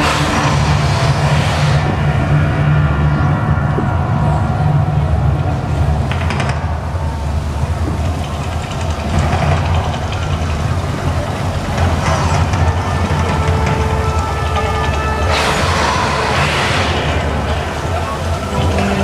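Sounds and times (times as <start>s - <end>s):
loud rushing hiss: 0.0s - 3.5s, 5.7s - 19.0s
deep steady rumble: 0.0s - 19.0s
show music: 12.8s - 19.0s.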